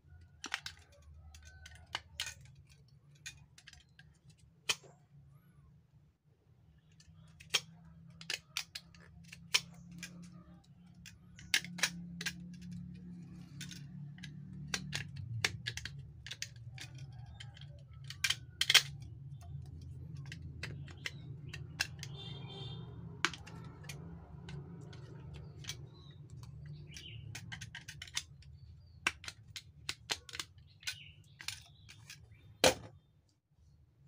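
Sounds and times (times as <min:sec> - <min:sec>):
plastic pieces clicking and tapping: 0:00.2 - 0:05.0, 0:06.8 - 0:32.9.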